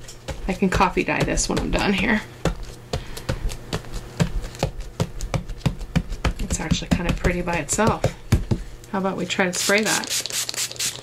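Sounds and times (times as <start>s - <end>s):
gloved hands patting paper: 0.2s - 8.8s.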